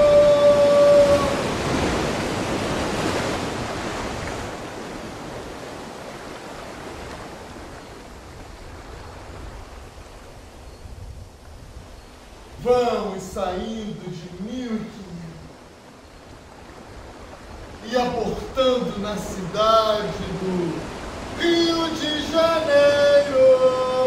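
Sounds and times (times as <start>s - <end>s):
sea waves surf: 0.0s - 24.0s.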